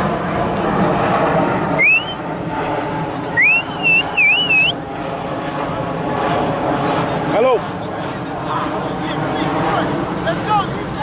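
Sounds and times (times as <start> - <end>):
outdoor background noise: 0.0 - 11.0
loud whistle sliding up: 1.8 - 2.2, 3.4 - 4.8.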